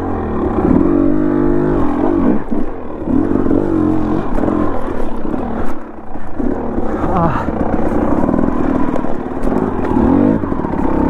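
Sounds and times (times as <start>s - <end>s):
dirt bike engine revving: 0.0s - 11.0s.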